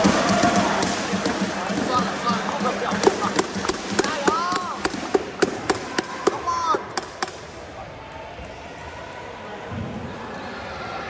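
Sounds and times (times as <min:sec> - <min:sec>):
racket hitting shuttlecock: 0:00.0 - 0:07.5.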